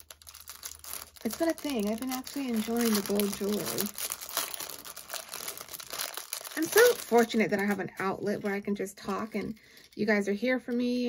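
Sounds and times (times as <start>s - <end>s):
packaging crinkling: 0.0s - 10.1s.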